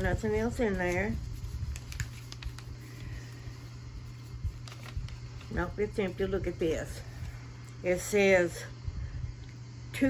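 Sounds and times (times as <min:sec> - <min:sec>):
paper card crinkling: 0:00.0 - 0:06.5
low room hum: 0:00.0 - 0:10.0.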